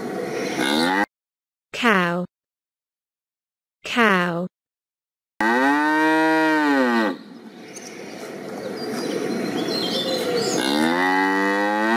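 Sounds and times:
cow mooing: 5.4s - 7.2s, 10.5s - 11.9s
faint bird chirps: 7.2s - 10.8s.

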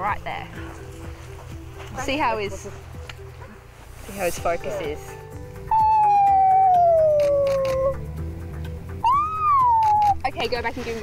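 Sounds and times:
high-pitched howl-like call: 5.7s - 8.0s, 9.0s - 10.2s
camera shutter clicks: 7.1s - 7.8s.

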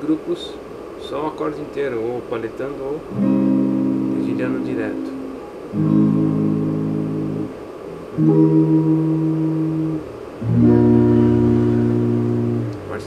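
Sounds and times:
electric guitar chords ringing: 3.1s - 13.0s.

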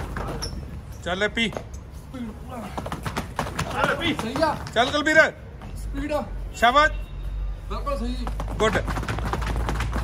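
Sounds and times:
hands and feet slapping tiled floor: 0.0s - 0.4s, 1.4s - 5.8s, 8.0s - 10.0s.

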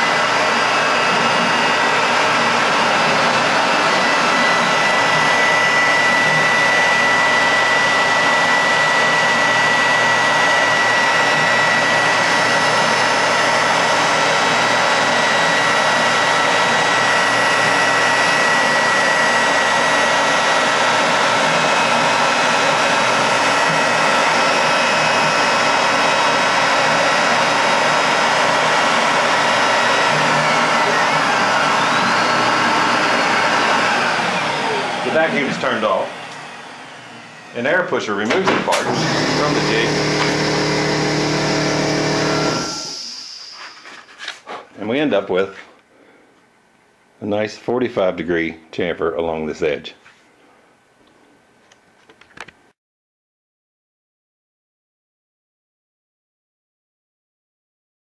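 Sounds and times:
vacuum rushing: 0.0s - 43.9s
router spindle cutting plastic: 0.0s - 44.4s
steady high whine: 0.0s - 45.4s.

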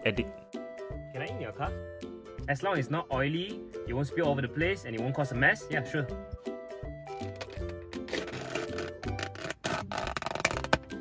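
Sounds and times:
background music: 0.0s - 11.0s
plastic lid crackling: 7.2s - 11.0s
plastic lid snapping: 7.3s - 11.0s.

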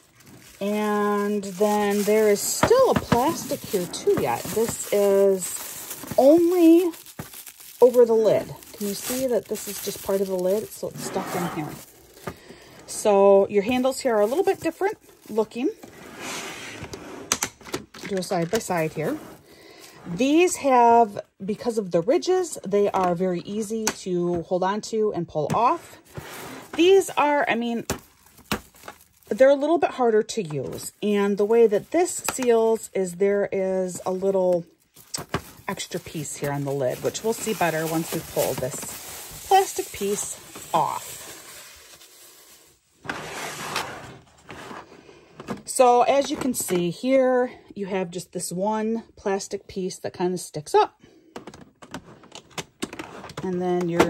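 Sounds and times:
plastic wrap rustling: 0.0s - 16.0s, 18.0s - 20.8s, 25.6s - 45.0s
plastic container sliding on table: 15.8s - 17.3s.

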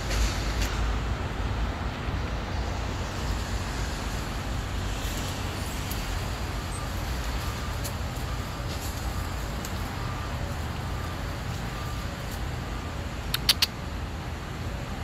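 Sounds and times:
distant road traffic rumble: 0.0s - 15.0s.

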